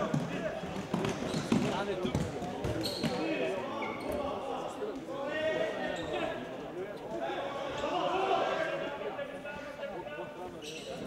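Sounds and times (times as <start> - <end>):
players shouting: 7.2 - 9.1.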